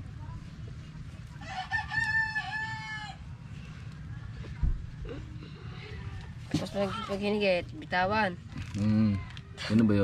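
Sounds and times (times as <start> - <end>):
rooster crowing: 1.4 - 3.2.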